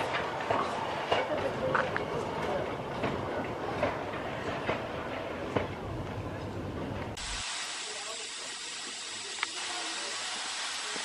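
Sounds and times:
steam hissing: 0:07.2 - 0:11.0.

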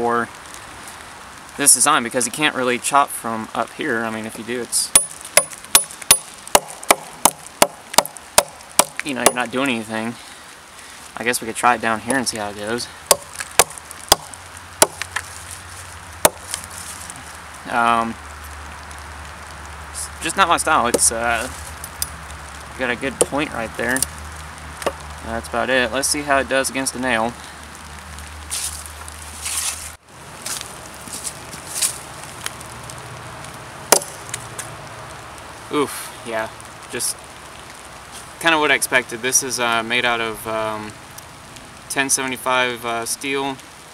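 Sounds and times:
machete chopping into log: 0:05.0 - 0:09.4, 0:13.1 - 0:15.1, 0:16.3 - 0:16.5, 0:33.9 - 0:34.2.

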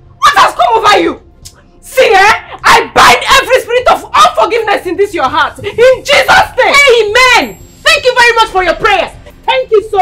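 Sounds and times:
person shouting excitedly: 0:00.2 - 0:01.2, 0:01.9 - 0:10.0.

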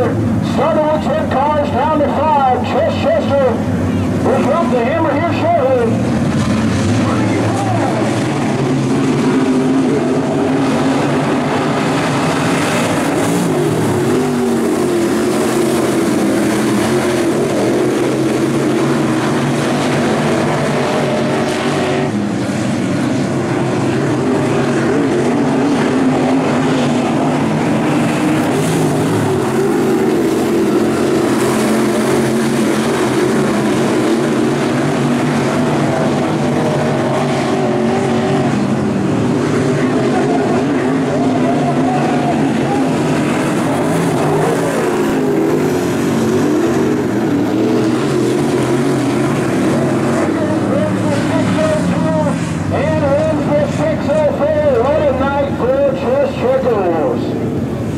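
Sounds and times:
race car engines roaring: 0:00.0 - 0:57.9.

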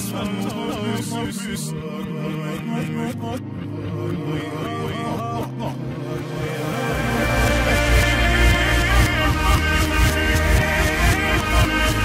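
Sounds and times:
reversed backing track: 0:00.0 - 0:12.0
reversed vocals: 0:00.0 - 0:12.0.

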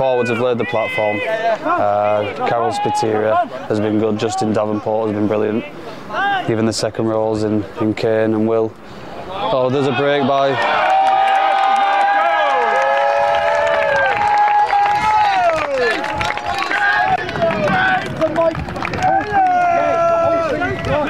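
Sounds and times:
people shouting and cheering: 0:00.0 - 0:03.6, 0:09.3 - 0:21.0.

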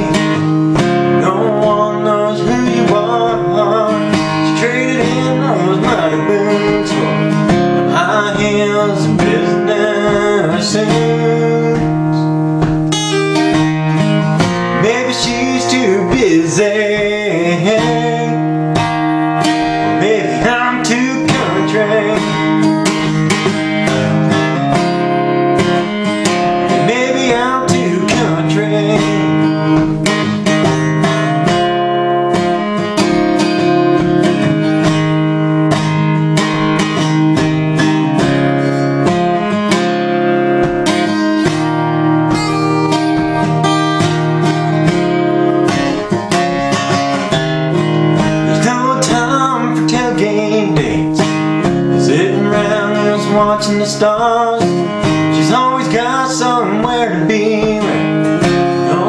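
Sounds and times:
acoustic guitar strumming chords: 0:00.0 - 0:59.0.

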